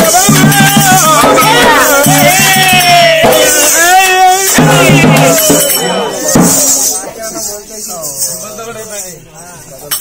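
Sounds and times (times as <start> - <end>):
folk music with jingling percussion: 0.0 - 10.0.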